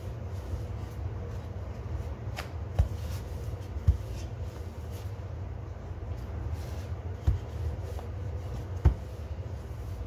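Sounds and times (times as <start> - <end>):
rolling pin rolling dough: 0.0 - 10.0.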